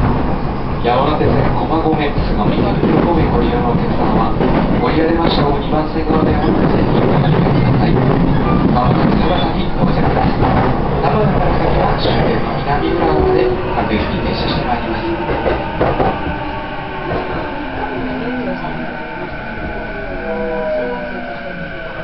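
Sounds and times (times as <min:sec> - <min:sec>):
train wheels rumbling on rail: 0:00.0 - 0:22.0.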